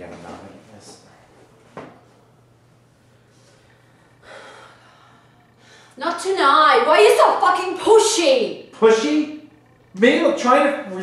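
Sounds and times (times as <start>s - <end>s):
faint low hum: 0.0s - 11.0s
woman breathing: 3.2s - 6.0s.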